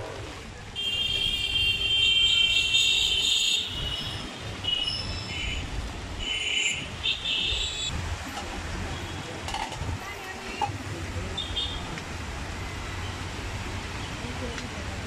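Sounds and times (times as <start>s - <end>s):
low traffic rumble: 0.0s - 15.0s
vehicle horns honking: 0.8s - 7.9s.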